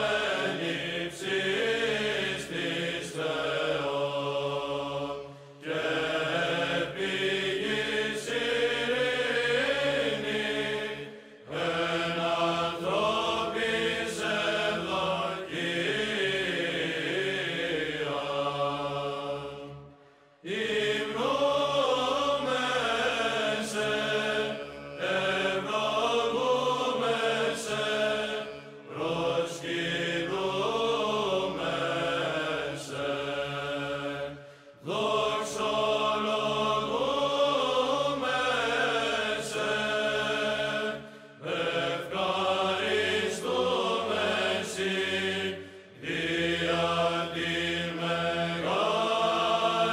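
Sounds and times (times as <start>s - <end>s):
chanted vocal music: 0.0s - 49.9s.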